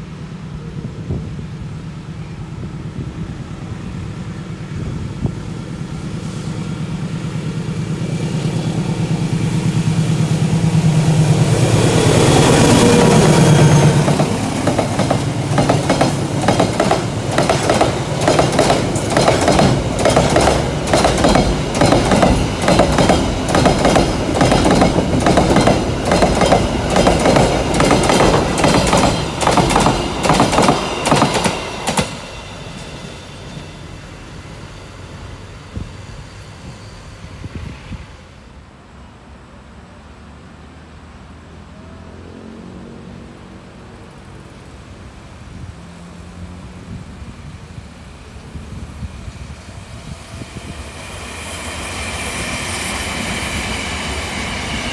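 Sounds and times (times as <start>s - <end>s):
locomotive engine passing: 0.0s - 54.9s
train wheels clicking on rail joints: 7.2s - 33.6s.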